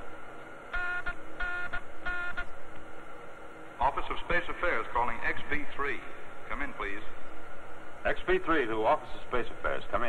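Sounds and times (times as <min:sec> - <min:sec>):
pulsing electronic buzz: 0:00.0 - 0:02.7
faint steady hum: 0:00.0 - 0:10.0.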